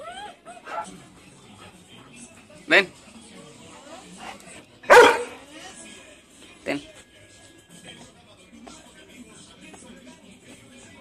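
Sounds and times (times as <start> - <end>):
dog barking: 4.9 - 5.4.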